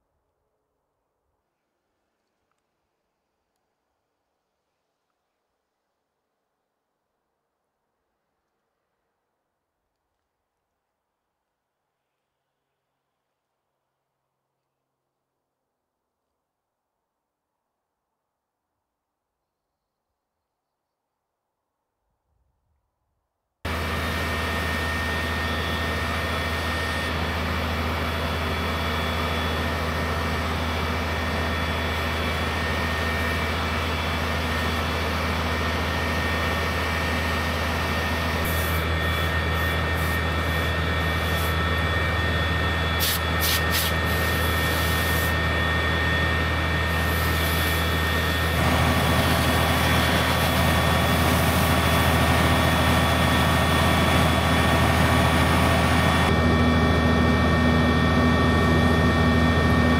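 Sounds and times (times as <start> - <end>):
heavy engine humming: 23.7 - 59.9.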